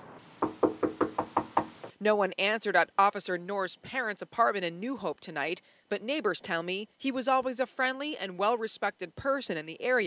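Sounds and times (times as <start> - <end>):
knocking on door: 0.4 - 2.0.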